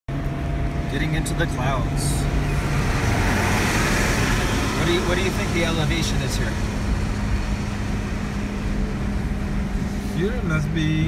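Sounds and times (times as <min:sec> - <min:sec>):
car engine noise: 0:00.1 - 0:11.0
constant low hum: 0:00.1 - 0:11.0
tyre road noise: 0:00.1 - 0:11.0.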